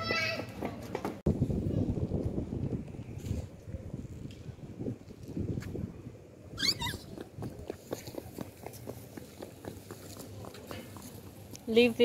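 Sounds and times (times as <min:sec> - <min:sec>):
toddler squealing: 0:06.6 - 0:07.1.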